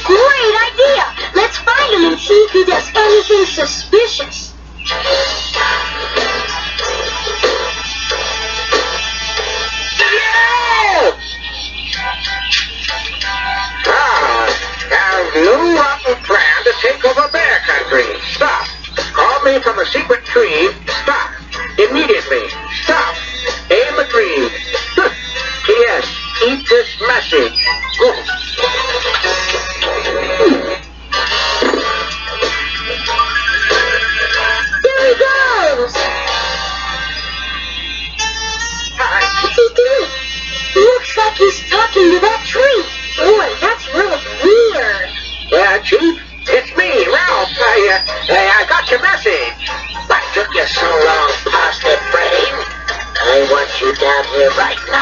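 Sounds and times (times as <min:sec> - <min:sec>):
cartoon music with singing: 0:00.0 - 0:55.0
steady low hum: 0:00.0 - 0:55.0.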